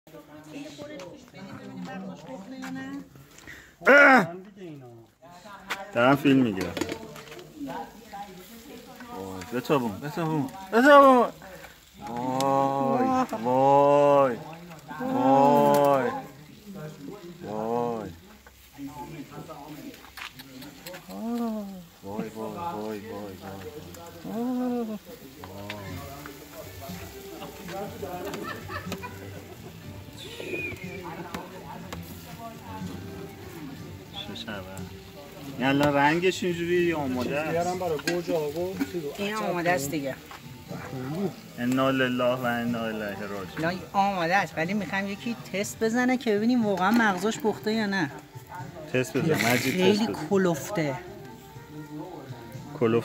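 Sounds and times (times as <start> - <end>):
music: 0.1 - 3.8, 4.4 - 53.0
people making drawn-out vocal sounds: 12.0 - 14.1, 24.2 - 25.8
people talking: 18.9 - 29.6.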